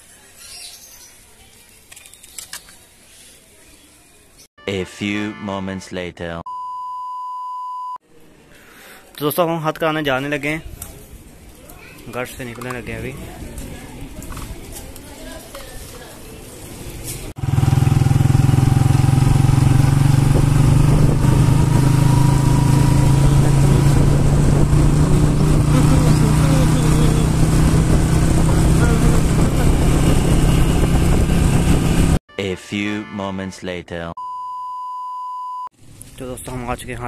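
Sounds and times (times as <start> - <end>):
motorcycle engine running: 17.4 - 32.2.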